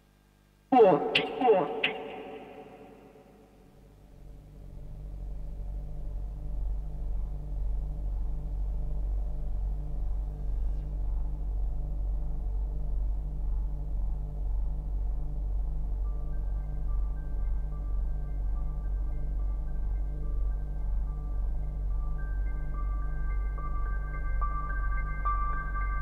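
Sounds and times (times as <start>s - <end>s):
deep synthesizer bass drone: 3.8s - 24.1s.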